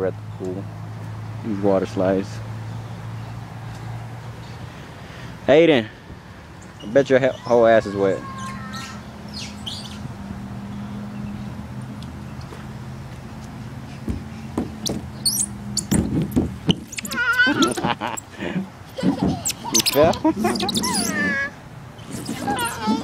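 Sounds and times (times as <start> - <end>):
toddler squealing: 7.3 - 9.1, 16.7 - 18.2, 19.0 - 23.0.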